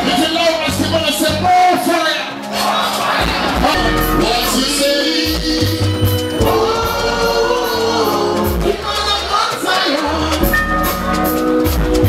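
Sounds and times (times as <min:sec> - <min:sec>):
live band music: 0:00.0 - 0:12.0.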